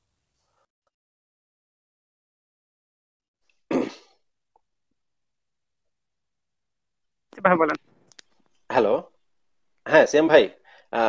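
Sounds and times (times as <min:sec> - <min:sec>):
man coughing: 0:03.7 - 0:04.2.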